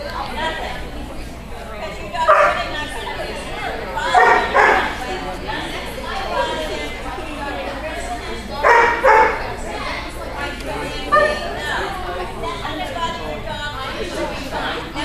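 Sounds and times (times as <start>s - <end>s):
people chattering: 0.0s - 15.0s
dog barking: 2.3s - 2.7s, 4.1s - 5.0s, 8.6s - 9.6s, 11.1s - 11.4s.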